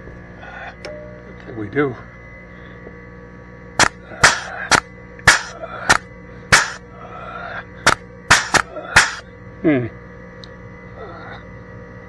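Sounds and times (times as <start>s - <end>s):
air grease gun snapping: 3.8s - 6.8s, 7.9s - 9.2s.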